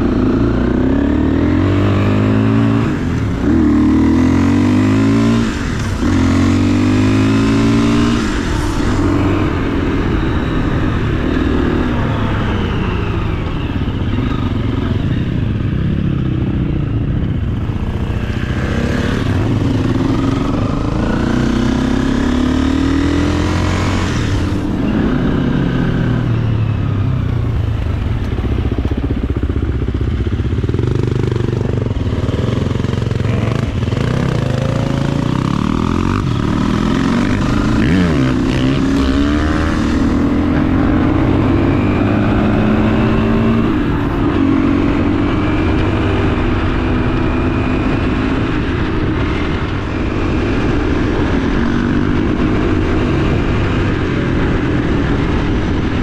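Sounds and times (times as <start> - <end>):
dirt bike engine revving: 0.0 - 26.3, 29.8 - 56.0.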